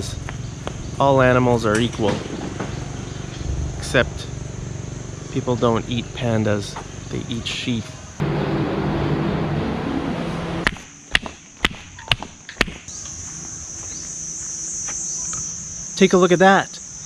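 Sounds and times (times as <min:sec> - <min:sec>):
insects shrilling: 0:00.0 - 0:08.2, 0:10.8 - 0:17.0
flip-flop footsteps on pavement: 0:00.2 - 0:00.9, 0:10.6 - 0:15.5
loud rushing noise with hum: 0:08.2 - 0:10.9.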